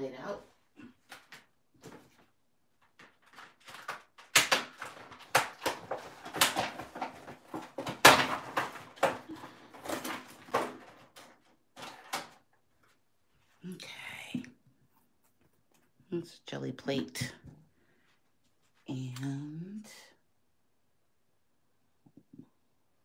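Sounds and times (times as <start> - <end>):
rustles clicks and knocks of handling: 1.0 - 13.0.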